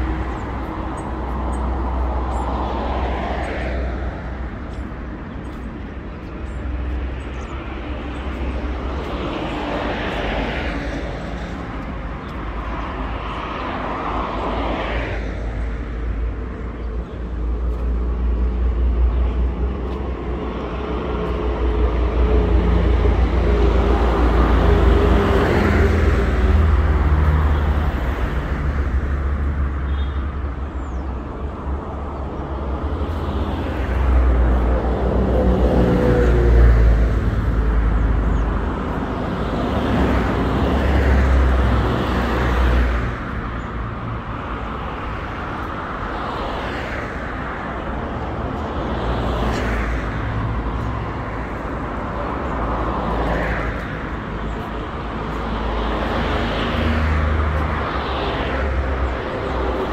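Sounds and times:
vehicles passing: 0.0s - 59.9s.

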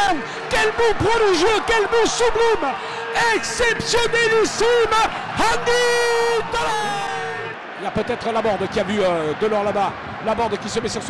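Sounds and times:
man shouting commentary: 0.0s - 9.7s
crowd noise: 0.0s - 11.0s.

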